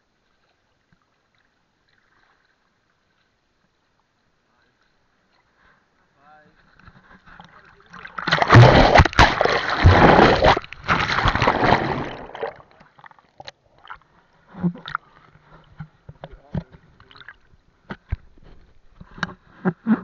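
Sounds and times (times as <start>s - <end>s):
seawater splashing and churning: 6.9s - 15.8s.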